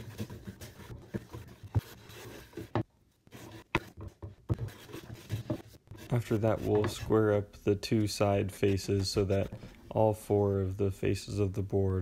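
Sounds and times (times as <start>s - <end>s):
hand plane scraping wood: 4.6s - 7.4s, 8.3s - 10.0s.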